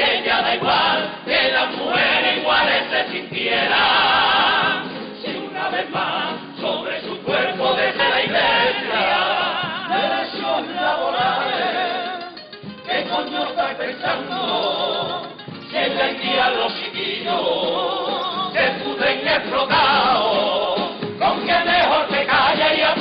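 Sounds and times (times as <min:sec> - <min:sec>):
men's chorus singing in harmony: 0:00.0 - 0:12.3, 0:12.9 - 0:23.0.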